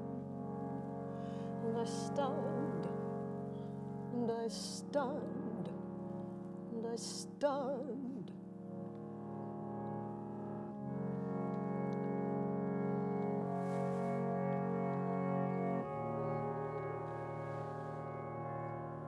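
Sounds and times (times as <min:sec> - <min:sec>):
held keyboard chords: 0:00.0 - 0:19.0.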